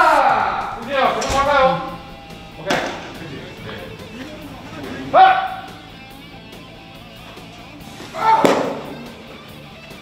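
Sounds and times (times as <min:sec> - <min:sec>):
person shouting: 0:00.0 - 0:01.6, 0:05.1 - 0:05.7, 0:08.1 - 0:08.7
faint background music: 0:00.0 - 0:10.0.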